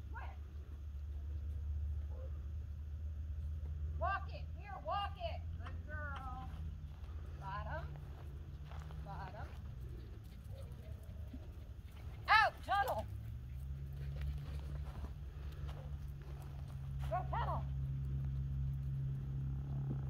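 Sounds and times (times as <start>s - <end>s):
low rumble of wind: 0.0s - 20.0s
small dog barking in high yips: 2.0s - 2.4s.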